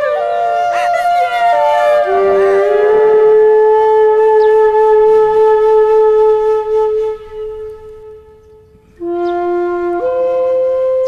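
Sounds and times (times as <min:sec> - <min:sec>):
long held flute note: 0:00.0 - 0:11.0.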